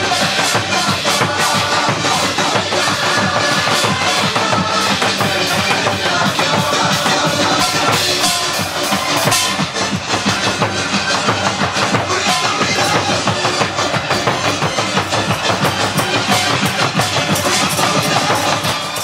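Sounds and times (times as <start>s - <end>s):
barrel drums beaten: 0.0s - 19.0s
music: 0.0s - 19.0s.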